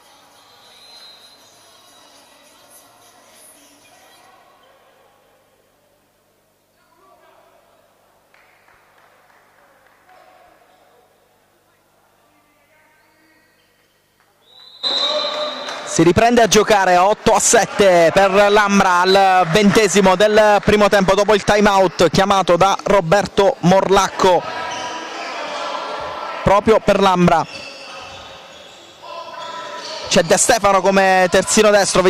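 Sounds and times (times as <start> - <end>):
crowd chatter: 14.8 - 32.0.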